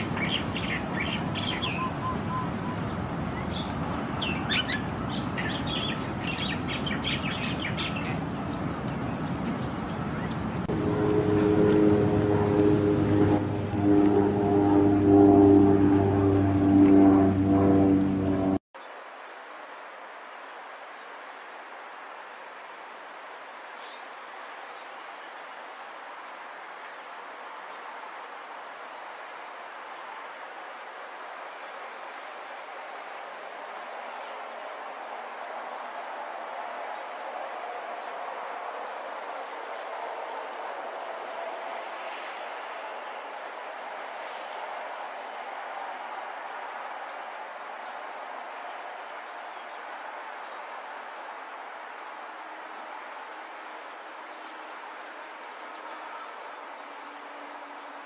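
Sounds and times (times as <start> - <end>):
small birds chirping: 0.0 - 10.6
loud steady drone: 10.6 - 18.6
faint outdoor hiss: 18.8 - 58.0.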